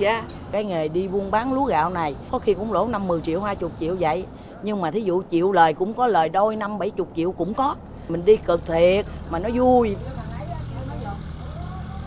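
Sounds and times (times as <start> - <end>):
boat engine running: 0.0 - 4.5, 7.1 - 12.0.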